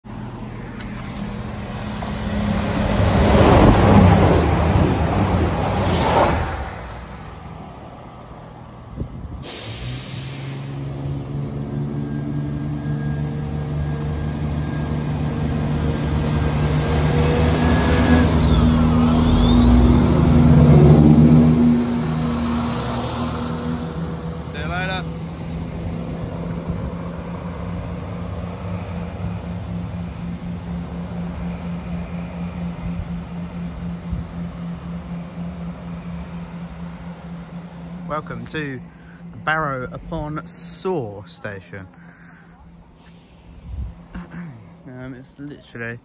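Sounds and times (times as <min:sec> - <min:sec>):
diesel train passing at speed: 0:00.0 - 0:46.0.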